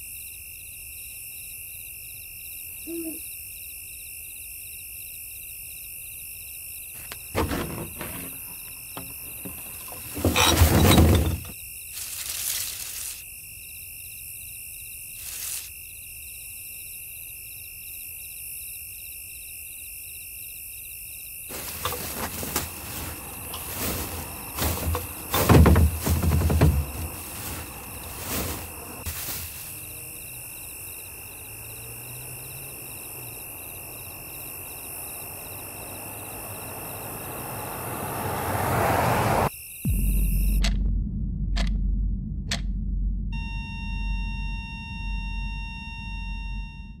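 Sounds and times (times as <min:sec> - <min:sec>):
insects chirping: 0:00.0 - 0:40.6
vehicle noise: 0:07.0 - 0:11.6, 0:21.5 - 0:40.7
plastic bag rustling: 0:07.4 - 0:13.2, 0:15.2 - 0:15.7, 0:21.5 - 0:30.0
low hum: 0:39.9 - 0:47.0
electronic beep tone: 0:43.3 - 0:47.0.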